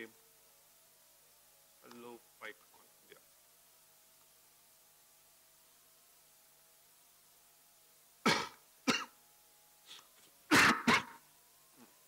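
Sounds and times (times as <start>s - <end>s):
person coughing: 8.2s - 9.1s, 10.5s - 11.2s.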